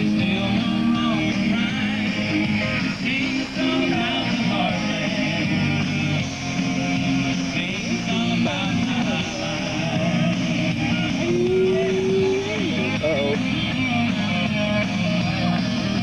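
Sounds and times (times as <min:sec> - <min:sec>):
young singers singing: 0:00.0 - 0:06.2, 0:07.5 - 0:13.2
rock guitar accompaniment: 0:00.0 - 0:16.0.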